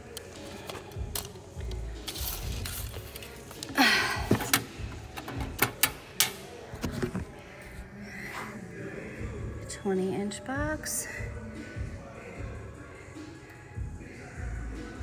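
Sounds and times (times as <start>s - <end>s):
tape measure handling rustle: 2.0s - 3.7s.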